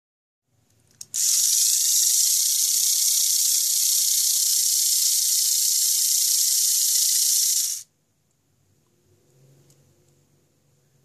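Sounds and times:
electric motor and gears whirring: 1.0 - 7.9.

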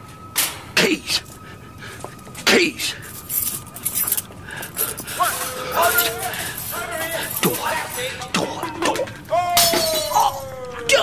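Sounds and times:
keys jangling: 3.0 - 8.4.

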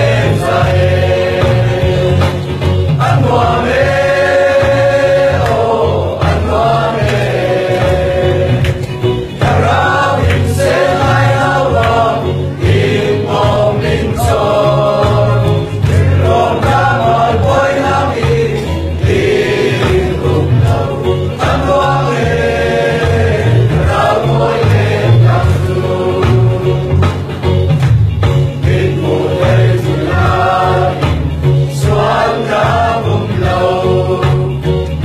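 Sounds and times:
low accompaniment notes: 0.0 - 35.0
mixed choir singing gospel: 0.0 - 35.0.

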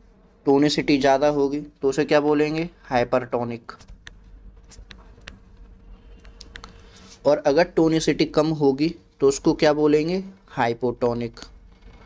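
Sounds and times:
faint buzzing hum: 0.0 - 12.0.

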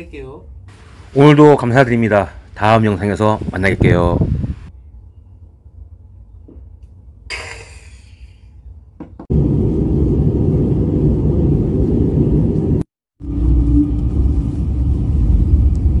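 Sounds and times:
airliner cabin rumble: 9.2 - 16.0.

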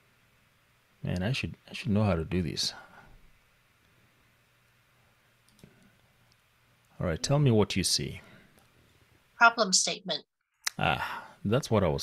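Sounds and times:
faint mouse clicks: 5.4 - 6.9.

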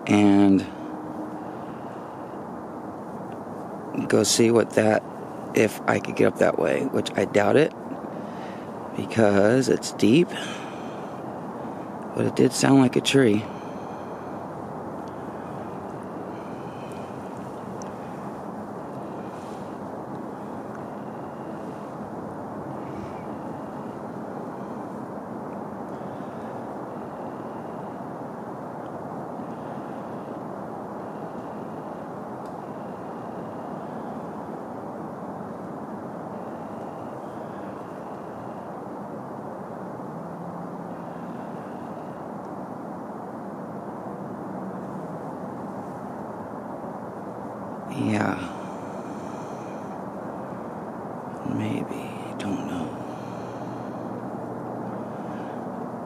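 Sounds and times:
low outdoor rumble: 0.0 - 56.0.

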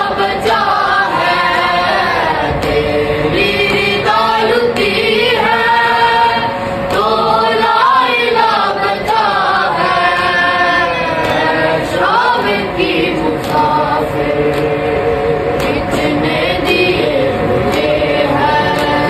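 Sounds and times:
men and boys chanting in unison: 0.0 - 19.0.

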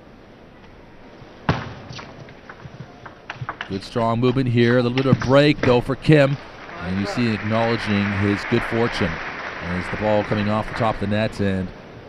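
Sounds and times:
low hall hum: 0.0 - 12.0.

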